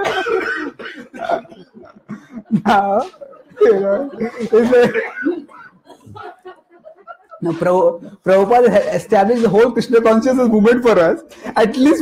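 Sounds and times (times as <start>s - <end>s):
person coughing: 0.0s - 3.2s, 4.4s - 5.7s
laughter: 0.0s - 8.0s
faint voices: 1.4s - 9.6s.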